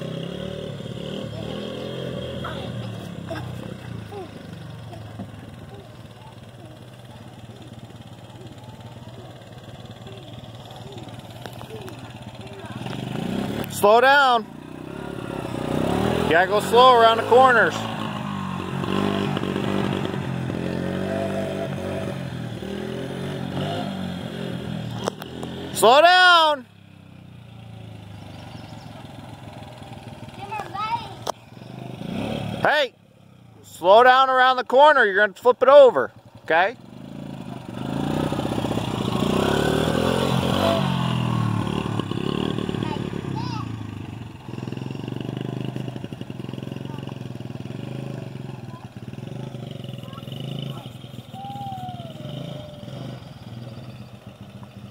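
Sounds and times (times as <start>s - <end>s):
quad bike engine running: 0.0s - 54.9s.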